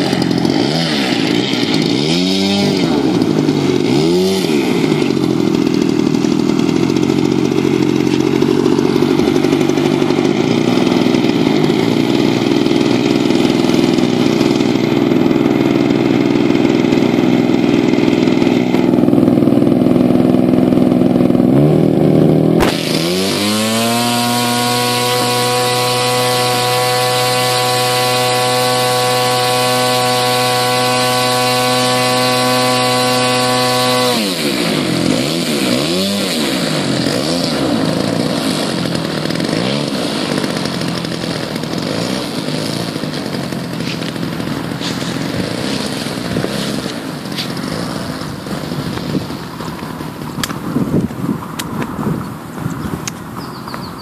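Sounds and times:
model aircraft engine and propeller: 0.0 - 54.0.

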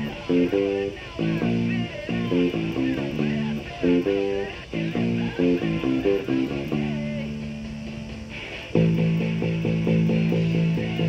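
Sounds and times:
electric bass guitar pulsing: 0.0 - 11.0
rock band music: 0.0 - 11.0.

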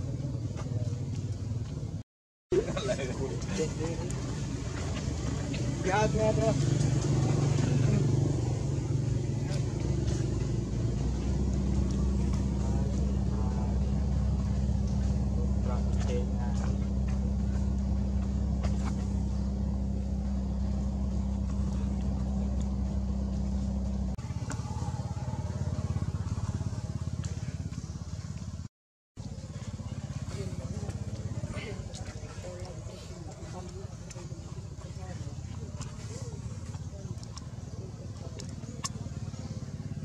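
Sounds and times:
low engine hum: 0.0 - 40.0.

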